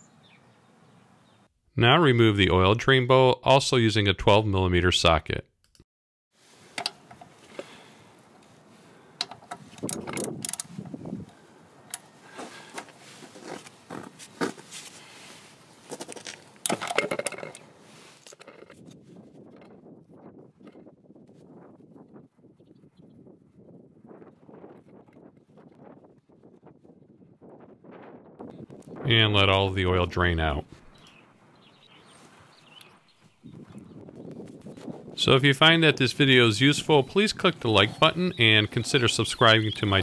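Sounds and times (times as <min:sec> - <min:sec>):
socket wrench metallic clicks: 0:09.2 - 0:10.7
bolt ticks and rubs: 0:09.2 - 0:10.8.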